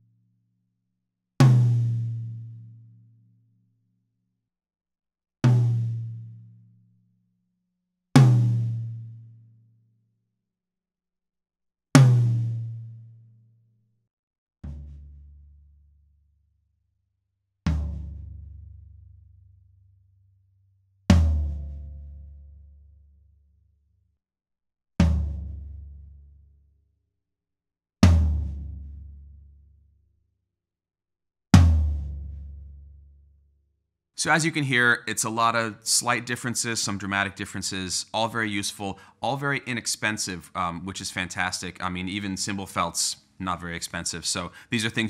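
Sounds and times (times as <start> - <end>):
floor tom drum strikes: 31.6 - 32.2.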